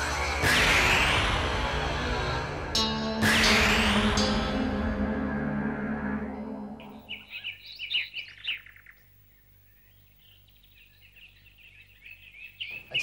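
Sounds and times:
birds chirping: 0:06.1 - 0:13.0.

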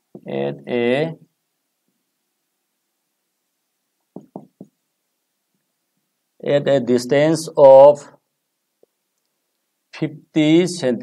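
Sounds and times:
marker knocking on whiteboard: 0:04.1 - 0:04.8.

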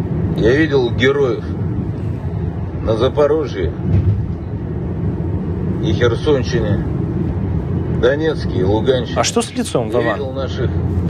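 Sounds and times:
car interior rumble: 0:00.0 - 0:11.0.

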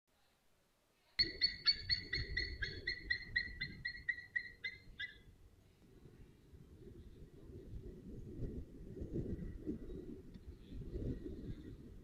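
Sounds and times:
bird calling clear notes: 0:01.2 - 0:05.3.

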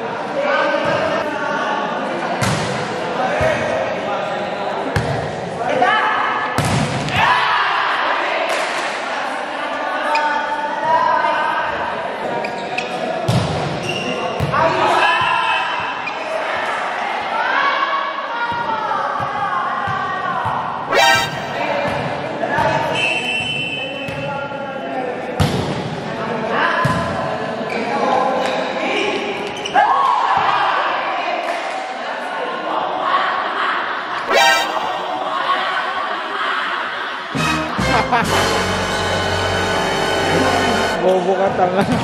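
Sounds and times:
people shouting and chattering: 0:16.2 - 0:22.6, 0:33.0 - 0:42.0
volleyball striking and bouncing: 0:20.9 - 0:22.1, 0:34.3 - 0:35.3.

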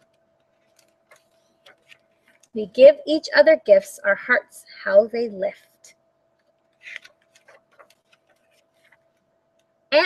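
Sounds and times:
page turning: 0:00.0 - 0:02.6, 0:06.4 - 0:09.3
picture book handling clicks: 0:00.0 - 0:02.6, 0:06.4 - 0:09.7.

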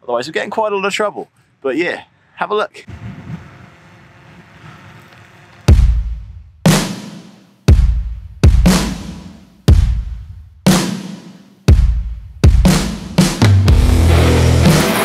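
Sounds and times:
heavy drum hits: 0:05.7 - 0:11.0, 0:11.7 - 0:15.0
background music: 0:11.9 - 0:15.0.

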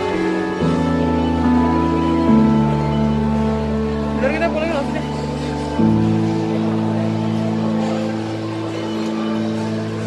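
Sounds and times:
slow sustained music chords: 0:00.0 - 0:10.0.

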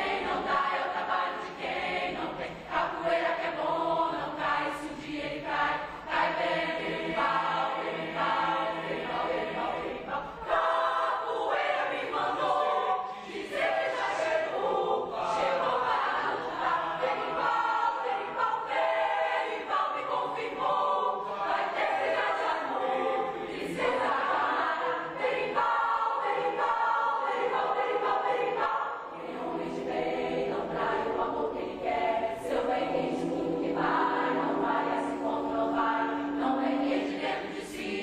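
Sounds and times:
mixed choir singing: 0:00.0 - 0:38.0.

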